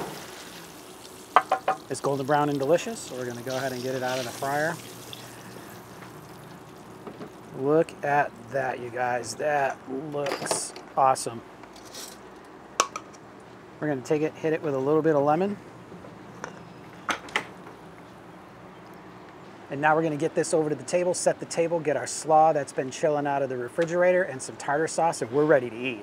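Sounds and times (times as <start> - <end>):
lemon squirts: 0.0 - 7.0
oil sizzling in a pan: 0.0 - 7.5.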